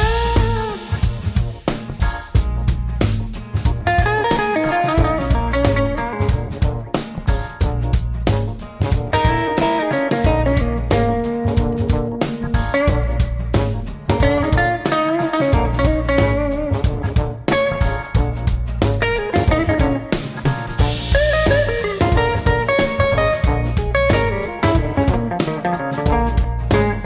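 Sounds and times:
bass: 0.0s - 27.0s
drum kit: 0.0s - 27.0s
electric guitar with bent notes: 0.0s - 27.0s.

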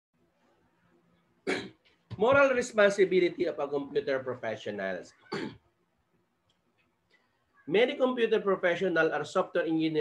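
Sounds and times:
man coughing: 5.3s - 5.6s.

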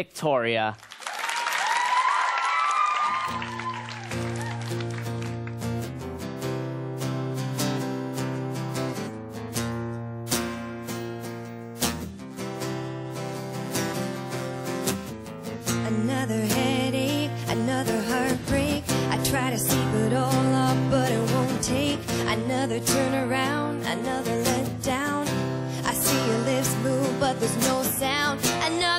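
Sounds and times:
audience clapping and cheering: 0.7s - 6.2s
high screams: 1.0s - 4.9s
guitar strumming chords: 3.4s - 28.9s.

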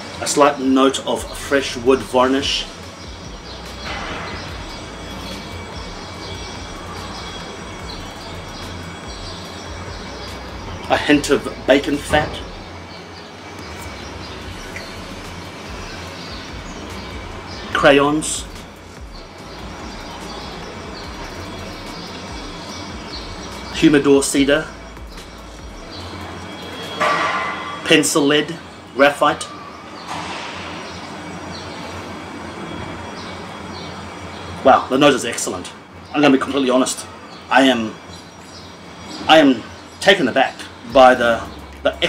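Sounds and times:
steady rumbling background noise: 0.0s - 42.0s.

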